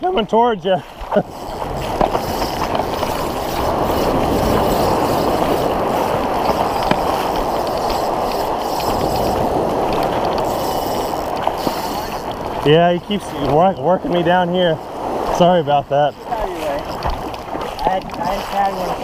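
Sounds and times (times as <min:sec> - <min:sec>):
ocean surf breaking: 0:00.0 - 0:19.0.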